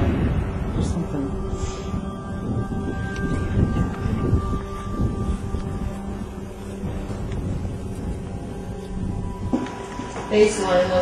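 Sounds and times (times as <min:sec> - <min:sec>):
background music long tones: 0:00.0 - 0:11.0
wind buffeting microphone: 0:00.0 - 0:11.0.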